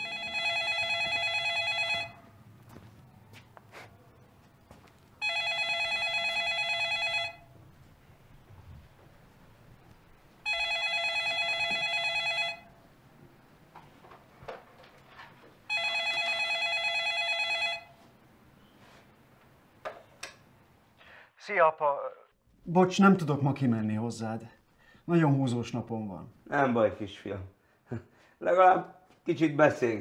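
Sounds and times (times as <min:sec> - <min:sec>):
telephone ringing with warbling trill: 0:00.0 - 0:02.2, 0:05.2 - 0:07.5, 0:10.4 - 0:12.7, 0:15.7 - 0:17.9.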